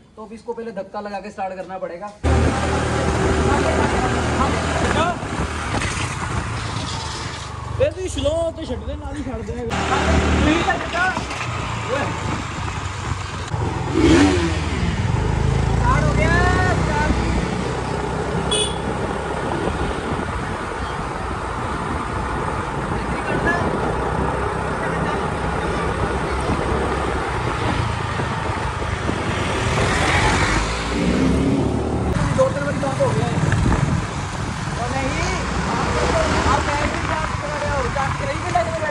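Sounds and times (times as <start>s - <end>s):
road and wind noise: 0.0s - 38.9s
motorcycle engines running: 2.2s - 9.1s, 9.7s - 38.9s.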